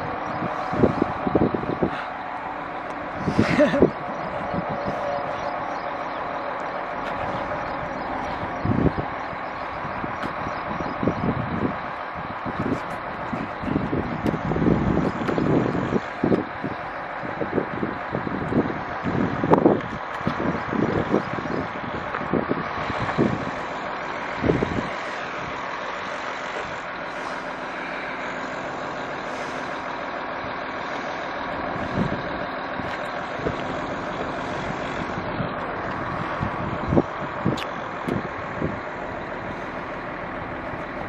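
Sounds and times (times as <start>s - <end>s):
vehicle engine droning: 0.0s - 41.0s.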